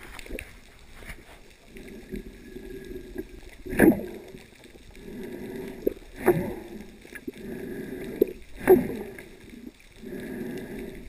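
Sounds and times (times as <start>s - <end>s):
faint ticks: 0.0s - 11.0s
swirling surges of water: 0.0s - 11.0s
muffled underwater drone: 1.0s - 11.0s.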